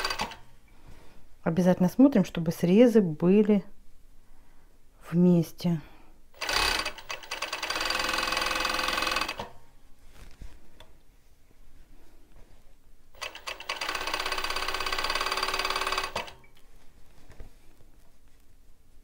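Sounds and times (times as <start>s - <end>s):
overlocker sewing a seam: 0.0s - 0.4s, 6.4s - 9.6s, 13.2s - 16.4s.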